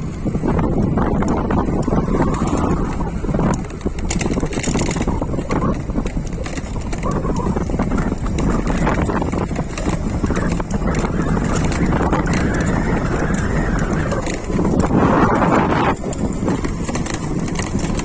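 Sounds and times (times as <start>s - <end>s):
road noise from moving bike: 0.0s - 18.0s
wind buffeting microphone: 0.0s - 18.0s
small rattles and knocks: 0.6s - 18.0s.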